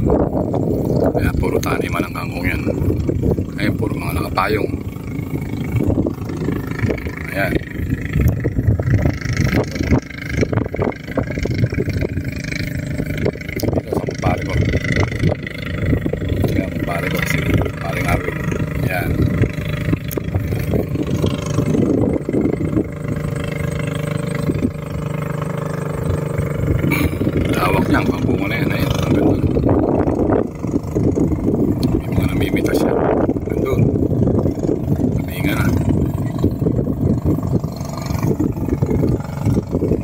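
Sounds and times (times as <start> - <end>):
boat engine running: 0.0 - 40.0.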